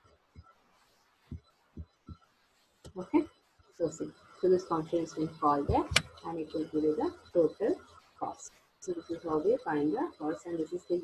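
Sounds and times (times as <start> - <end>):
soft low thumps: 1.3 - 2.2, 4.5 - 7.5.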